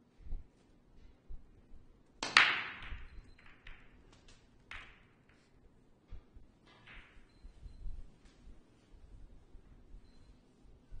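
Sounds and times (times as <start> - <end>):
cue striking ball: 2.2 - 4.0
billiard balls clicking: 2.2 - 5.6, 6.6 - 7.3
sharp crack of billiard balls: 2.2 - 5.6, 6.6 - 7.3.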